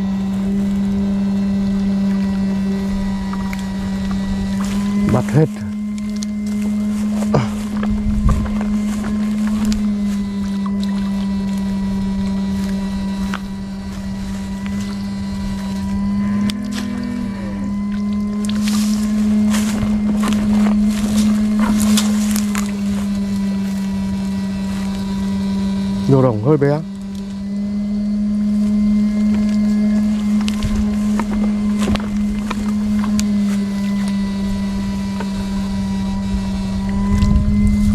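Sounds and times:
electronic fish-shocker humming: 0.0s - 37.9s.

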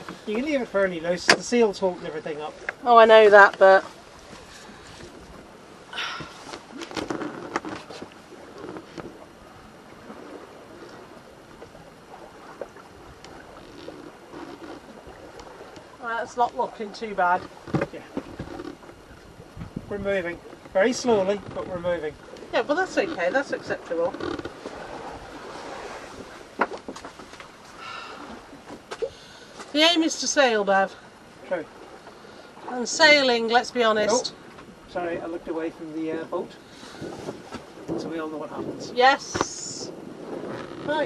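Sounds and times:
water washing along hull: 0.0s - 41.0s
wind: 0.0s - 41.0s
wind on microphone: 17.4s - 26.9s, 36.9s - 41.0s.

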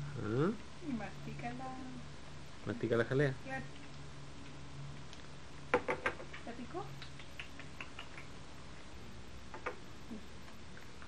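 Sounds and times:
tape hum and hiss: 0.0s - 11.0s.

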